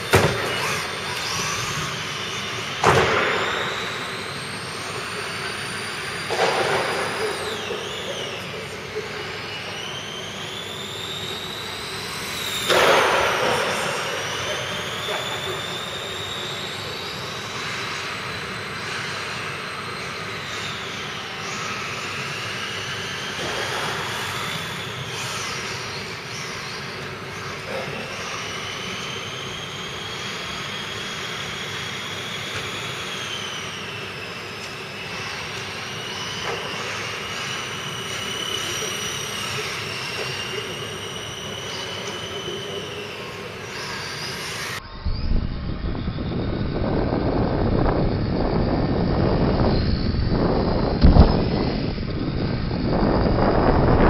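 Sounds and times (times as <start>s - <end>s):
electric rc car motors whining: 0.0s - 54.0s
loud rumbling noise: 44.6s - 54.0s.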